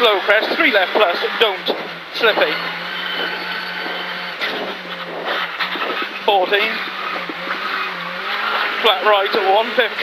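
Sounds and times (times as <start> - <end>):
gravel and tyre noise: 0.0 - 10.0
rally car engine running hard: 0.0 - 10.0.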